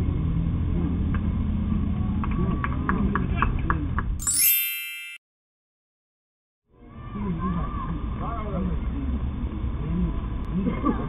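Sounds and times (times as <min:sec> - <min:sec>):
bright electronic chime: 0:04.2 - 0:05.2.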